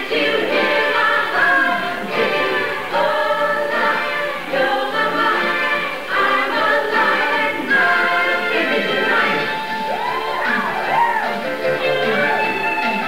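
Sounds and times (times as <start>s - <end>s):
cast singing in chorus: 0.0s - 13.0s
musical accompaniment: 0.0s - 13.0s.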